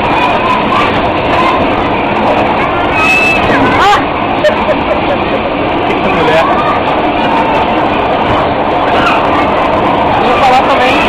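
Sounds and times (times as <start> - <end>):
bumper cars rumbling: 0.0 - 11.0
short high squeal: 2.9 - 3.6.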